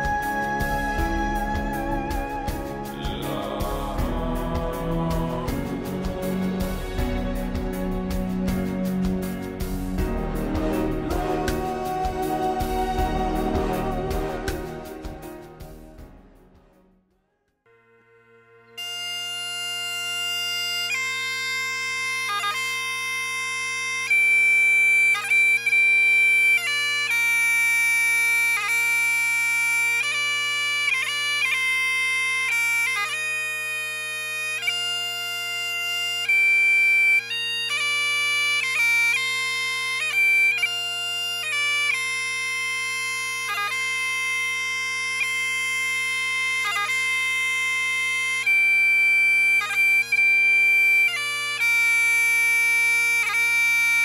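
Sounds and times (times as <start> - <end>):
bagpipe chanter melody: 0.0 - 16.4, 17.7 - 54.0
bagpipe drones humming: 0.0 - 16.4, 17.7 - 54.0.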